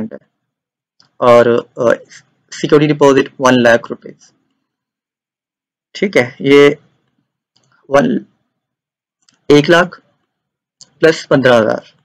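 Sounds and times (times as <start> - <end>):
faint clicks: 6.9 - 7.8.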